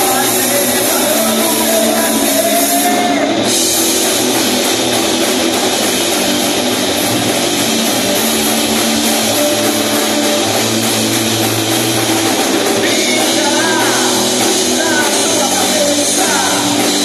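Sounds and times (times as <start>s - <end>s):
drum kit: 0.0s - 17.0s
electric guitars: 0.0s - 17.0s.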